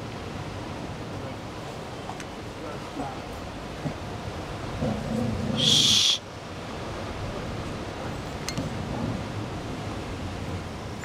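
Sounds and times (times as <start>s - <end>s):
loud sharp hiss: 5.6s - 6.3s.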